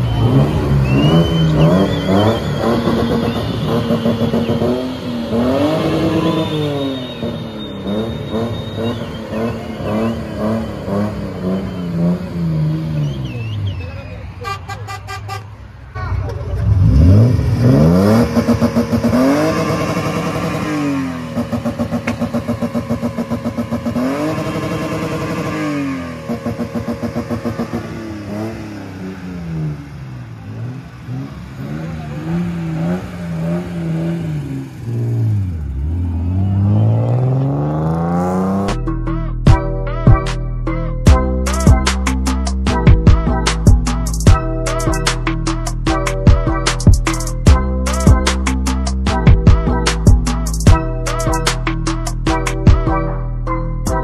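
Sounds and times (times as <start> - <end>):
pulsing beep: 0.0 - 14.2, 35.7 - 38.7
car engine revving: 0.0 - 14.4, 15.8 - 53.0.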